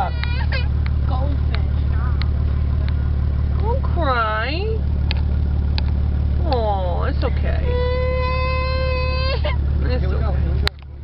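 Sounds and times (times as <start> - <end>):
car engine drone in cabin: 0.0 - 11.0.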